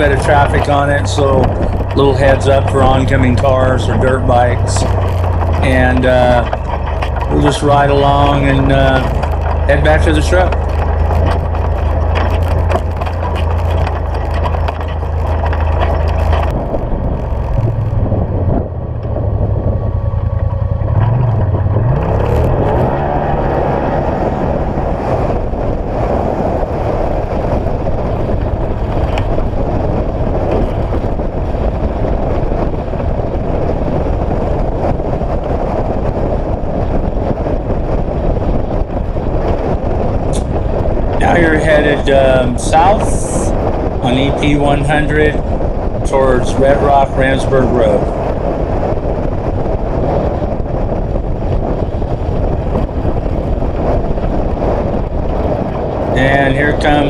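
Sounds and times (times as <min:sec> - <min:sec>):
tyre and road noise: 0:00.0 - 0:57.0
utility vehicle engine running: 0:00.0 - 0:57.0.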